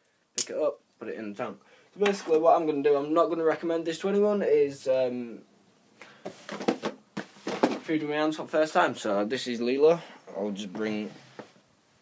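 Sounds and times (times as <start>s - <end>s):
person speaking: 0.4s - 5.5s, 7.6s - 11.4s
rustling of objects moved: 6.0s - 8.4s, 10.3s - 11.7s
knocks of objects being handled: 6.2s - 7.9s.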